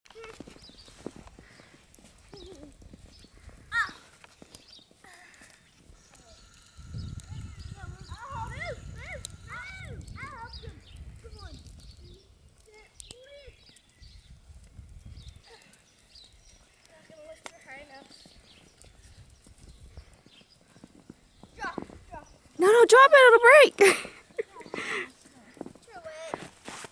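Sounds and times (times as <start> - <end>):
wind buffeting microphone: 2.4 - 4.0, 5.9 - 16.6, 18.0 - 22.5
faint children's voices: 3.5 - 4.2, 5.0 - 14.2, 15.3 - 18.6, 21.4 - 26.5.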